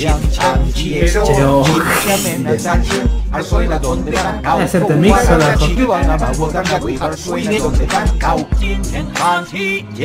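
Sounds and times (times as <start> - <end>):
rapped vocals: 0.0 - 9.7.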